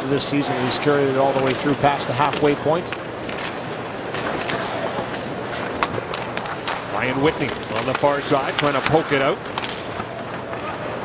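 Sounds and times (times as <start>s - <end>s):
hockey sticks and puck clacking: 0.3s - 11.0s
skates scraping on ice: 0.4s - 11.0s
crowd murmur: 3.1s - 11.0s.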